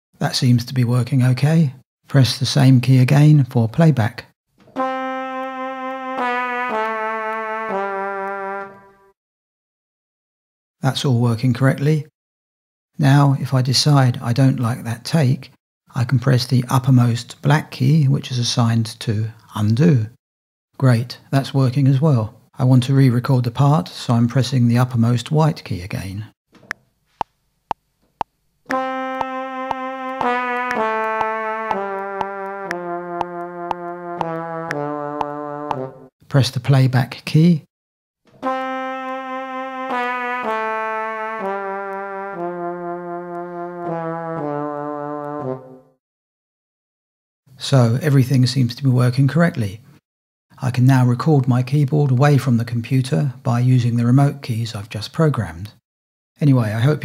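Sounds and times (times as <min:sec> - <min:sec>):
brass-like synthesizer notes: 0:04.8 - 0:09.2, 0:28.7 - 0:36.1, 0:38.4 - 0:46.0
metronome clicks: 0:28.2 - 0:35.8.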